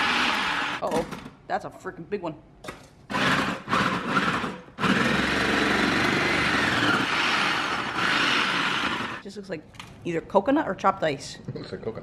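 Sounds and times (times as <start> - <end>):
food processor chopping: 0.0 - 0.8, 3.1 - 9.2.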